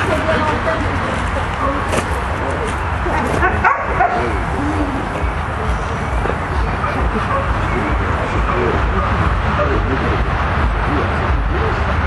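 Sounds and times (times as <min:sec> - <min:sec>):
dogs yipping and whining: 0:03.4 - 0:09.7.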